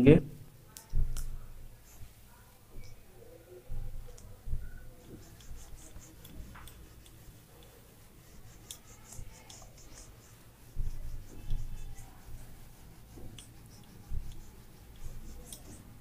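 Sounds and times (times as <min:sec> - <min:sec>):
whiteboard eraser wiping: 0:01.0 - 0:03.0, 0:03.7 - 0:16.0.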